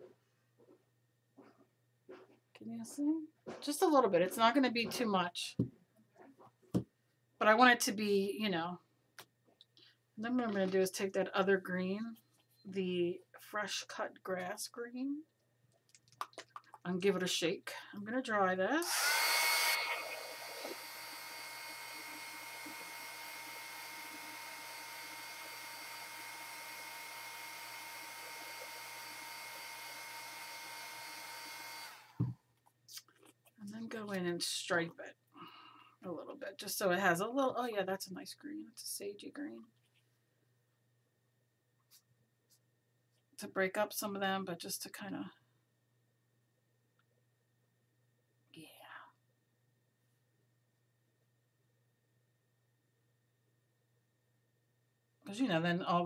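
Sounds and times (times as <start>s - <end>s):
hot air dryer blowing: 18.8s - 32.3s
woman whispering: 48.6s - 49.2s.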